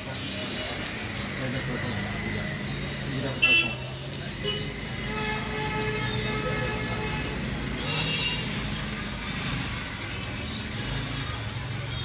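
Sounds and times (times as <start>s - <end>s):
traffic noise: 0.0s - 12.0s
loud car horn toot: 3.4s - 3.8s.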